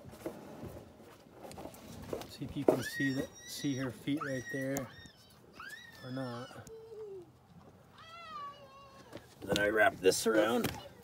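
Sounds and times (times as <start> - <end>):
high-pitched animal call: 2.9 - 7.0.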